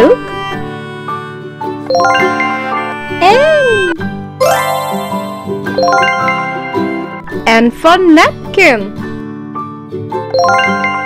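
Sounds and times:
light children's background music: 0:00.0 - 0:11.0
rising bell-like chime: 0:04.4 - 0:07.2.

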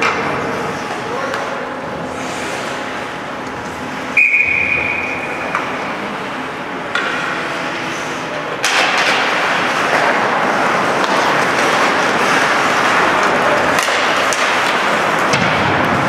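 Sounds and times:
arena crowd noise: 0:00.0 - 0:16.0
shrill whistle blast: 0:04.2 - 0:05.2
skates and sticks on ice: 0:06.9 - 0:16.0.

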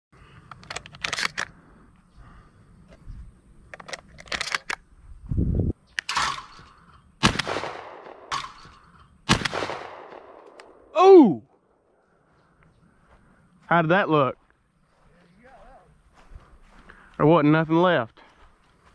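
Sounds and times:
shotgun handling clicks: 0:00.3 - 0:01.6, 0:03.6 - 0:04.8, 0:05.9 - 0:10.8
gunshots with echo: 0:07.2 - 0:08.7, 0:09.3 - 0:10.6.

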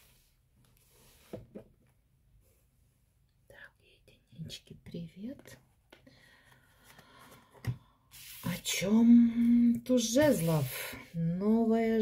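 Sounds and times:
soft whisper: 0:03.4 - 0:05.6.

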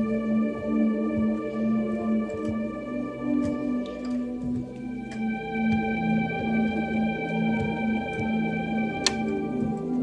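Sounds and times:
electronic keyboard playing: 0:00.0 - 0:10.0.

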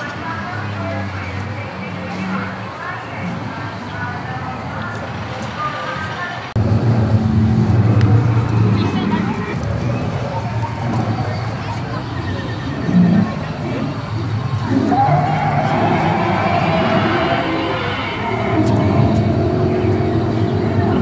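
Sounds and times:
background noise: 0:00.0 - 0:21.0
indistinct voices: 0:00.0 - 0:21.0.

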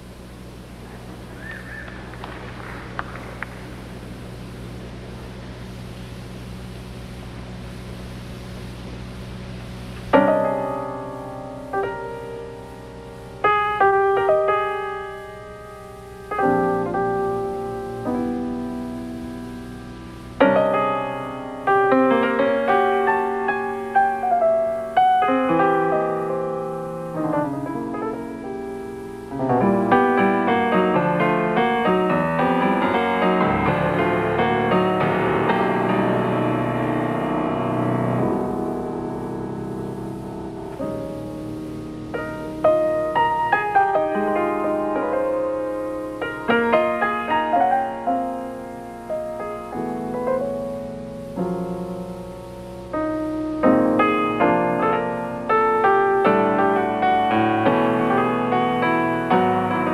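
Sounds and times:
low hum: 0:00.0 - 0:47.0
solo piano chords: 0:08.9 - 0:59.9.

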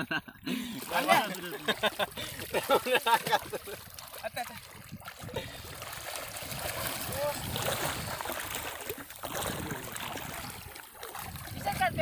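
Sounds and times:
shallow water sloshing and splashing: 0:00.4 - 0:12.0.

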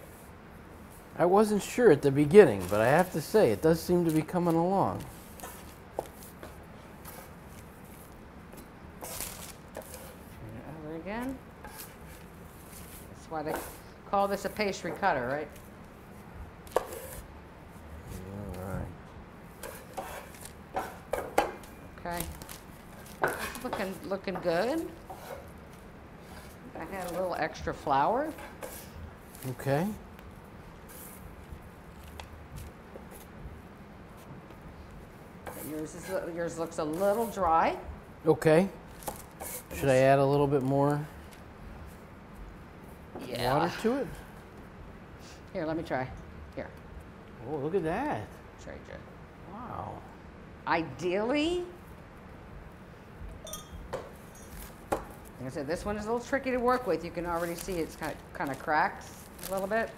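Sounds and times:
pastry cutter scraping dough on board: 0:19.6 - 0:21.3, 0:23.2 - 0:25.5, 0:35.4 - 0:36.3.

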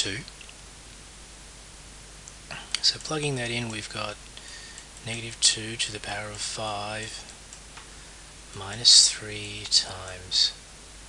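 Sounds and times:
man speaking: 0:00.0 - 0:00.3, 0:02.5 - 0:04.2, 0:05.0 - 0:07.3, 0:08.5 - 0:10.6
faint room tone hiss: 0:00.0 - 0:11.0
intake of breath: 0:04.4 - 0:04.9.

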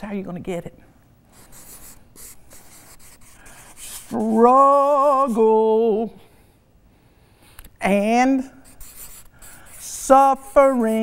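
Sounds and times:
marker pen writing on paper: 0:01.4 - 0:04.3, 0:08.6 - 0:11.0.

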